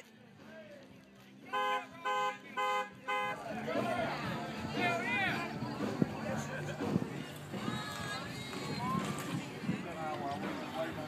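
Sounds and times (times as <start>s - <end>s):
people talking: 1.4s - 11.0s
car horn honks: 1.5s - 3.4s.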